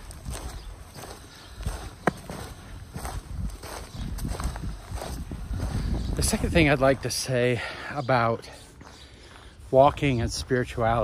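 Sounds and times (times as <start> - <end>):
footsteps on leafy dirt trail: 0.0 - 11.0.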